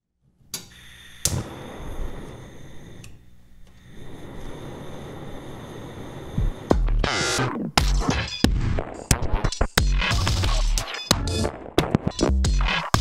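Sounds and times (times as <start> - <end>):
gas igniter click: 0.6 - 1.6
gas burner rushing: 0.7 - 7.0
low thumps: 6.4 - 8.8.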